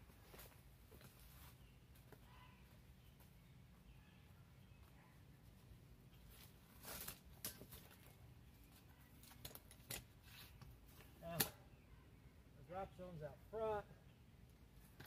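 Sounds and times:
rope and metal hardware clicking: 6.8 - 8.2, 9.1 - 11.6.

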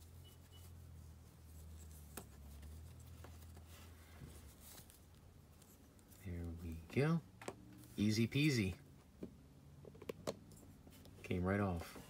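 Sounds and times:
cloth rustling and rubbing: 0.0 - 9.2.

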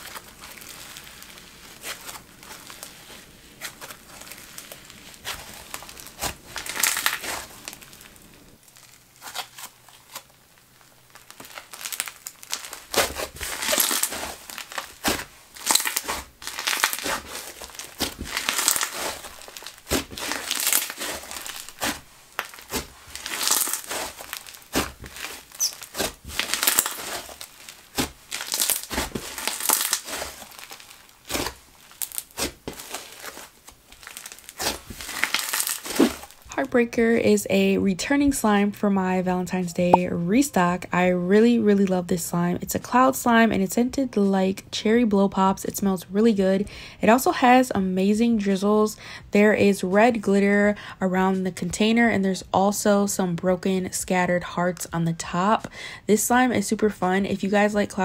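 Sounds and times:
slime crackling and crunching: 0.0 - 36.6.

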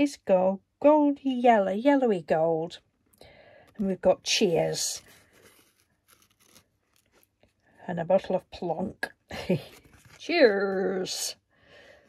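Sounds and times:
woman speaking: 0.0 - 2.8, 3.8 - 5.0, 7.8 - 11.4
paper card crinkling in fingers: 4.9 - 7.8.

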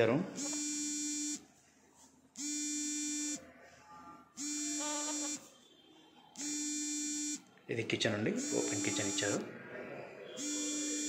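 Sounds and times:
electronic buzzer beeping: 0.3 - 1.5, 2.4 - 3.4, 4.2 - 5.6, 6.4 - 7.5, 8.4 - 9.5, 10.3 - 11.0.

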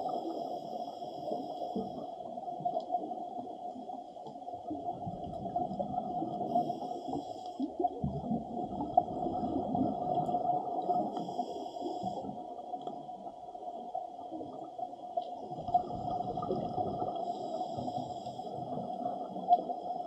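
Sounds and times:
faint hiss: 0.0 - 2.2, 6.4 - 7.8, 10.8 - 12.4, 17.2 - 18.9
muffled underwater water rumble: 0.0 - 20.0.

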